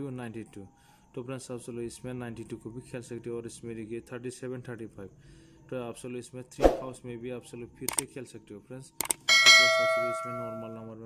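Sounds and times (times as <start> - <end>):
bell-like ding: 9.3 - 10.9.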